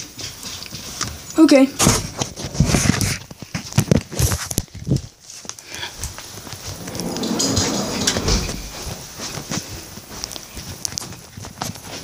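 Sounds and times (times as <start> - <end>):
footsteps: 6.0 - 10.7.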